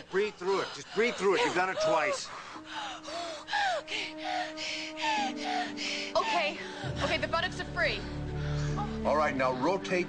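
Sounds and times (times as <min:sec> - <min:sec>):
soft sustained music: 0:00.1 - 0:10.0
woman panting: 0:00.4 - 0:07.1
woman whimpering: 0:01.0 - 0:06.9.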